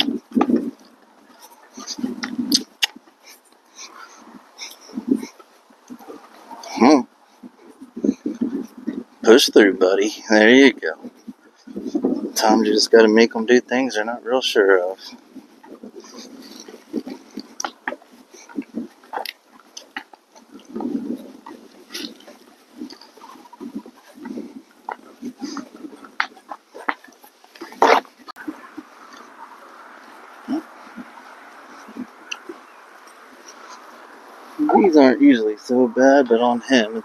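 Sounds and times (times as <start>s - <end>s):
horse hooves on dirt: 0.0s - 37.0s
horse snorting: 14.6s - 35.2s
horse tack rattling: 14.8s - 34.9s
faint steady hiss: 26.9s - 37.0s.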